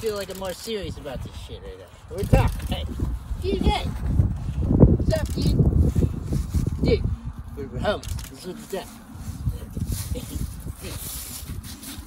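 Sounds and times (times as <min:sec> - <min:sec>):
wind rumbling on microphone: 0:00.0 - 0:12.0
microphone handling noise: 0:02.2 - 0:07.4.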